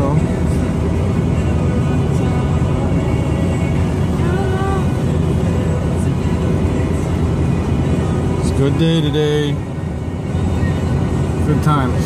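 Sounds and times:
road and engine noise in car: 0.0 - 12.0.

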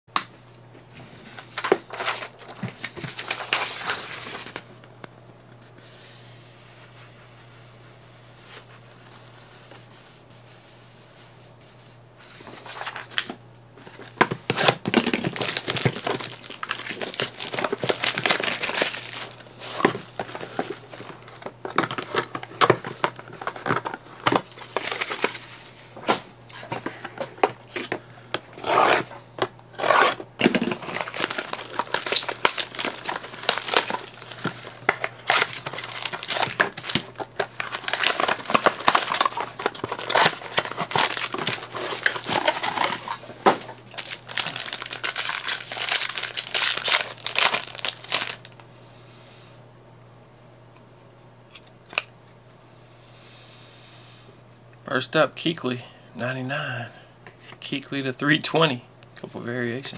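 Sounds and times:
plastic wrapping crinkling and tearing: 1.4 - 4.6, 12.6 - 25.8, 28.5 - 48.6.

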